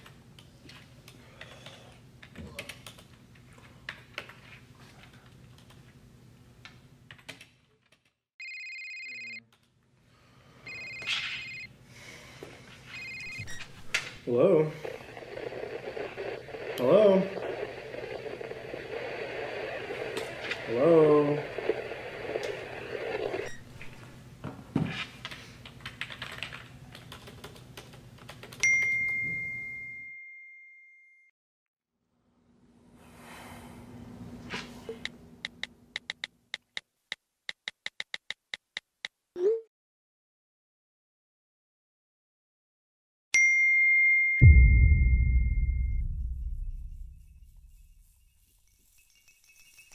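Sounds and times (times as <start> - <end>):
phone ringing: 8.4 - 9.4, 10.7 - 11.7, 12.9 - 13.9, 14.7 - 23.8
computer keyboard typing: 25.7 - 28.6.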